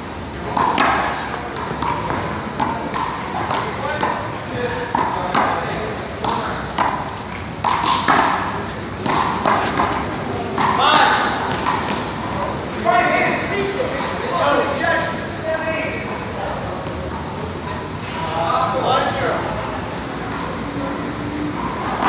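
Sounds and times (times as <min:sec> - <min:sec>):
people's voices: 0:00.0 - 0:22.0.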